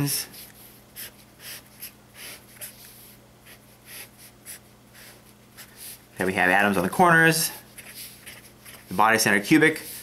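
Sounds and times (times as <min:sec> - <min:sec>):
low steady hum: 0:00.0 - 0:10.0
marker pen scratching on paper: 0:00.4 - 0:06.0, 0:07.7 - 0:08.9.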